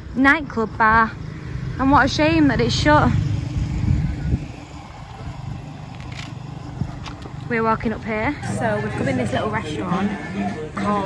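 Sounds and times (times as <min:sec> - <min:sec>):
vehicle engine hum: 0:00.0 - 0:11.0.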